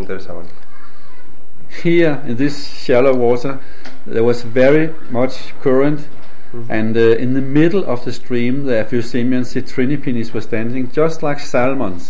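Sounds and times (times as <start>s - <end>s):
man speaking: 0.0s - 0.6s, 1.7s - 12.0s.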